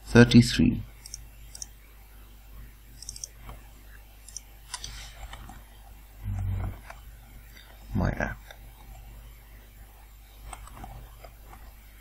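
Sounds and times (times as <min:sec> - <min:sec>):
man humming hmm: 0:06.2 - 0:06.8.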